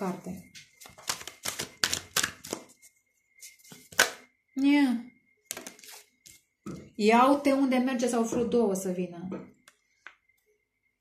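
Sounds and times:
cards shuffling clicks: 0.8 - 2.8, 3.6 - 4.2.

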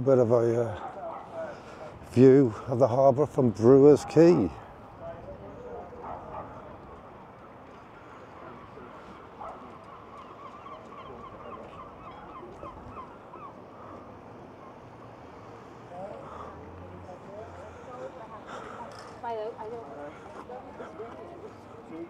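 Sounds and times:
bird rising call: 9.8 - 14.8.

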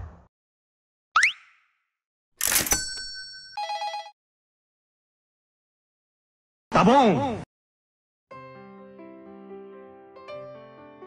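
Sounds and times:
bell ringing: 2.4 - 4.2.

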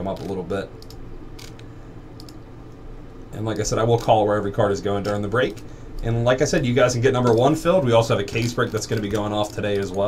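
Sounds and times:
steady low hum: 0.0 - 10.0
computer mouse clicks: 0.1 - 2.8.

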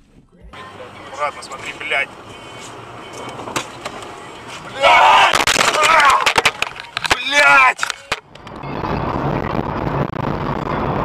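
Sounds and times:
road and engine noise inside car: 0.4 - 11.0.

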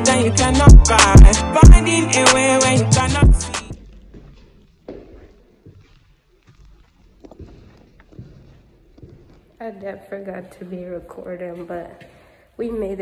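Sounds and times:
footsteps on concrete stairs: 3.7 - 9.9
woman speaking: 9.6 - 13.0.

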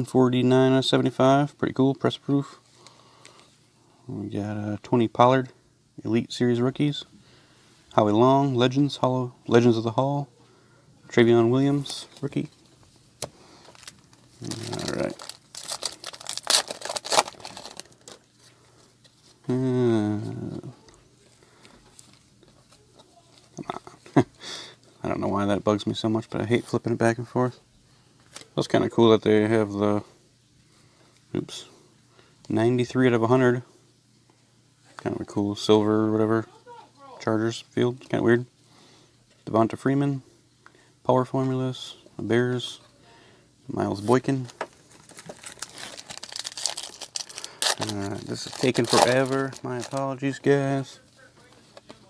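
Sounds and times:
foil wrapper crinkling and tearing: 13.6 - 18.4, 44.1 - 50.9
man laughing: 23.6 - 24.6
trading cards clicking and rustling: 44.4 - 50.4.

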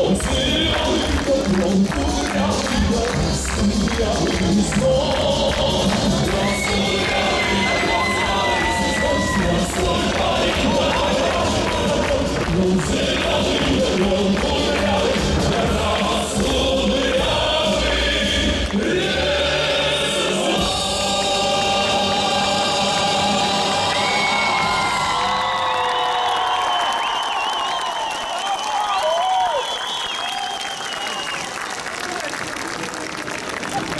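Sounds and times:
man singing live: 0.0 - 24.6
band playing: 0.0 - 25.3
crowd noise: 0.0 - 33.9.

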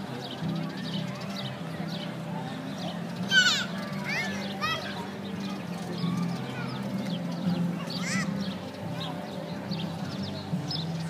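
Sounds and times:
outdoor crowd chatter: 0.0 - 11.0
children squealing: 3.3 - 5.0, 8.0 - 8.4.

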